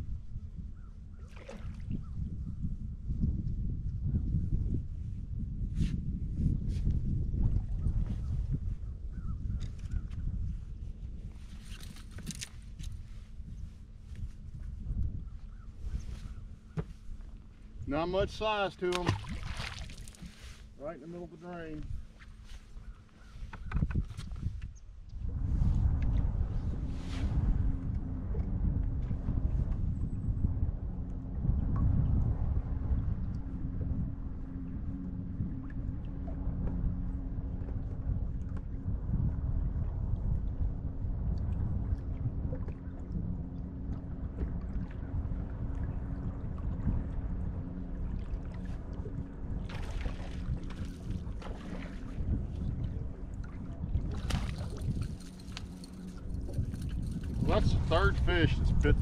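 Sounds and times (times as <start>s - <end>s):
wind rumbling on microphone: 0.0s - 59.0s.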